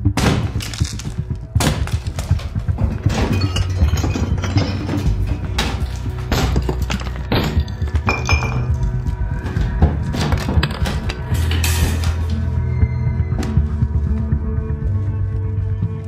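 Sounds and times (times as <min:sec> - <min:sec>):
hand tools knocking and clinking: 0:01.9 - 0:08.8
film score with low pulse: 0:05.1 - 0:16.0.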